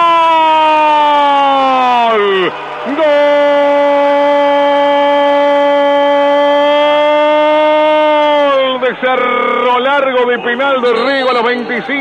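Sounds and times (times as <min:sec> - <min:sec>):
fast excited speech: 0:08.3 - 0:12.0.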